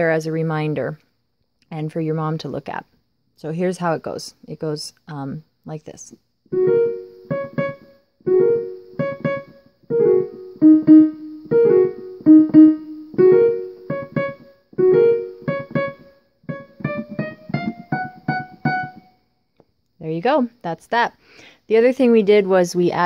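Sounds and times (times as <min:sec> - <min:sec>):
electronic keyboard piano piece: 0:06.5 - 0:19.1.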